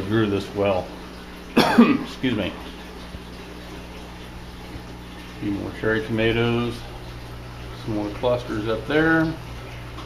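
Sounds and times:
low steady hum: 0.0s - 10.0s
trickle of running water: 0.0s - 10.0s.

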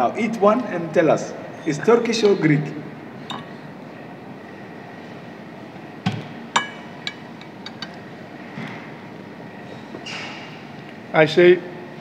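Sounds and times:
room noise: 0.0s - 12.0s
metal fork clinking on a plate: 6.6s - 8.0s.

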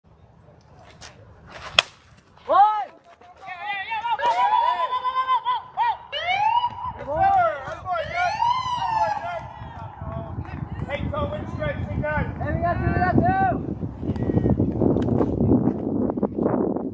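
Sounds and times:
bat striking baseball: 1.5s - 2.3s
voices shouting: 2.5s - 13.6s.

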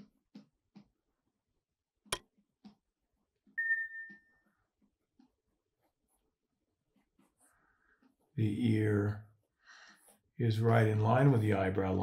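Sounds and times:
bell-like ding: 3.6s - 4.4s.

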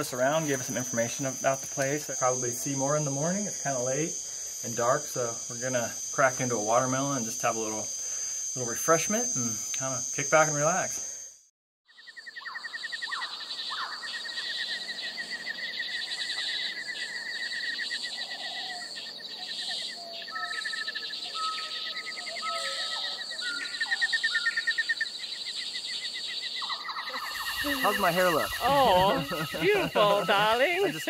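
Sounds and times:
cicadas buzzing: 0.0s - 31.0s
birds calling: 11.9s - 31.0s
person speaking: 27.4s - 31.0s.

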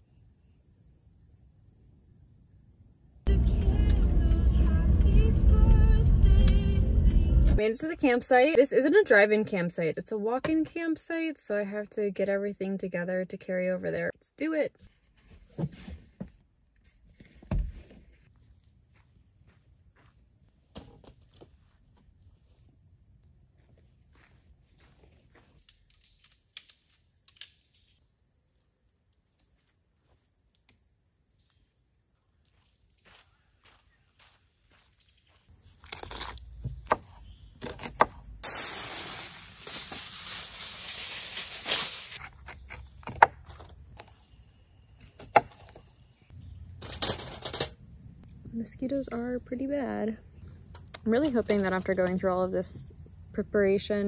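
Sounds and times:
insects droning: 0.0s - 6.7s, 17.4s - 54.0s
rustling from handling: 37.7s - 42.2s.

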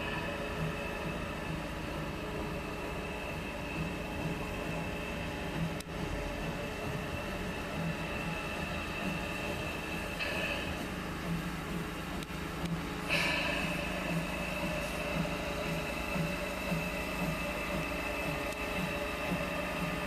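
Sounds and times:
high-pitched steady tone: 0.0s - 20.0s
steam locomotive approaching: 0.0s - 20.0s.

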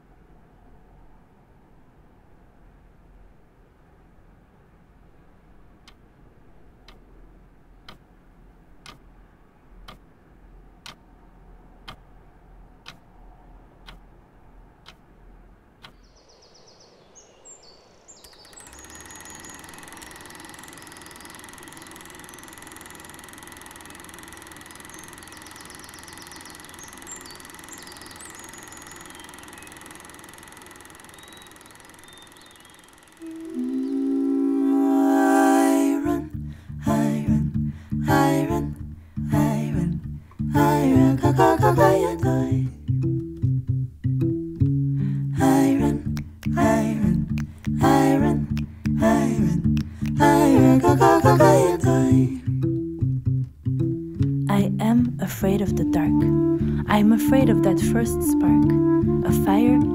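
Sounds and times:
slow ticking: 6.8s - 8.2s, 8.8s - 9.1s, 9.7s - 10.1s, 10.8s - 11.1s, 11.8s - 12.2s, 12.8s - 13.2s, 13.8s - 14.2s, 14.8s - 15.1s, 15.8s - 16.1s, 18.2s - 55.2s
birds chirping: 16.0s - 22.5s, 24.7s - 30.2s, 31.0s - 33.2s
plucked guitar music: 36.2s - 59.9s.

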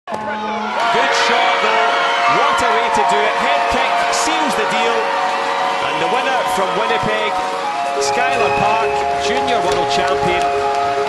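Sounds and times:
crowd cheering and shouting: 0.1s - 11.0s
music: 0.1s - 11.0s.

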